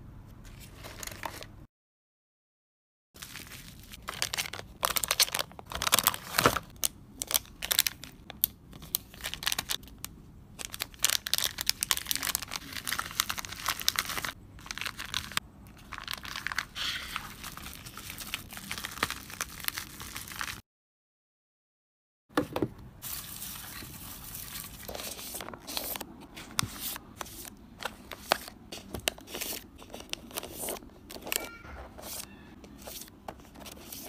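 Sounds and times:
plastic bags crinkling: 0:03.2 - 0:10.0, 0:10.6 - 0:20.6.

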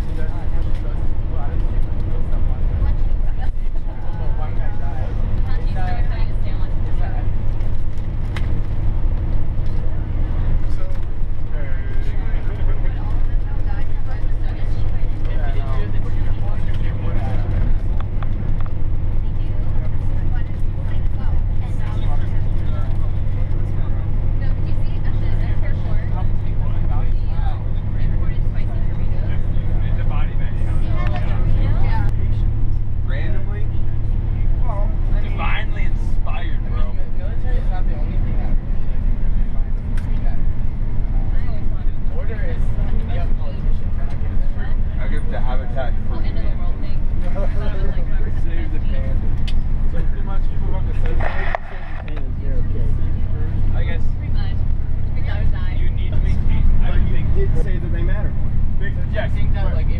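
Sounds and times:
bus engine and tyres droning: 0:00.0 - 0:59.9
passengers talking faintly: 0:00.0 - 0:59.9.

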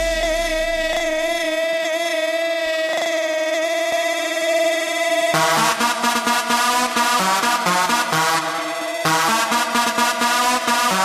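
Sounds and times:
house music sustained chord: 0:00.0 - 0:01.6, 0:05.3 - 0:11.0.

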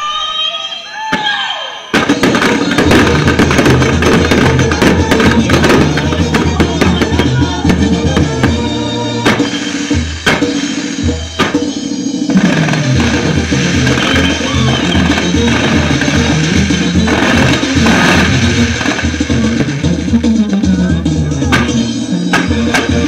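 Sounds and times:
firework bangs: 0:01.1 - 0:23.0
loud band music: 0:01.9 - 0:23.0.

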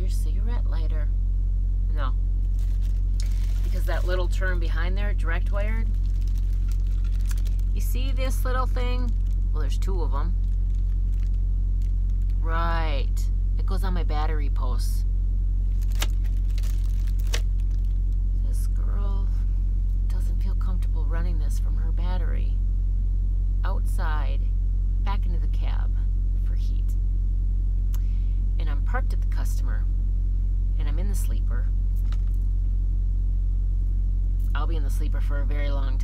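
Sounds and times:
truck engine rumble: 0:01.8 - 0:14.8, 0:15.4 - 0:21.2
cord clicks and rustles: 0:02.4 - 0:04.4, 0:05.8 - 0:09.6, 0:10.4 - 0:12.4, 0:15.7 - 0:18.2, 0:31.9 - 0:32.5.

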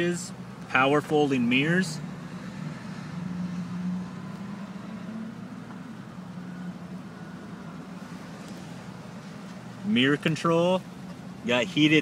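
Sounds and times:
side mirror motor whirring: 0:01.3 - 0:11.9.

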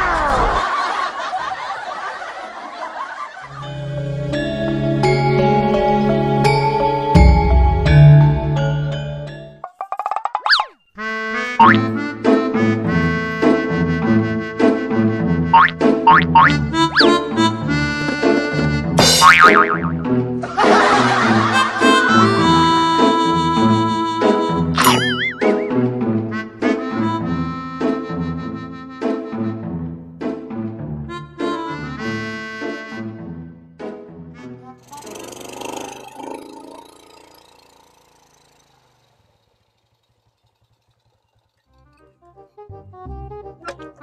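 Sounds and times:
boing sound effect: 0:10.0 - 0:10.8, 0:11.6 - 0:11.9, 0:15.5 - 0:17.2, 0:19.0 - 0:20.2, 0:24.8 - 0:25.8, 0:35.1 - 0:37.8
cartoon comedy music: 0:10.1 - 0:29.4, 0:34.2 - 0:37.3, 0:42.1 - 0:44.0
small motorcycle engine idling: 0:34.8 - 0:43.2.

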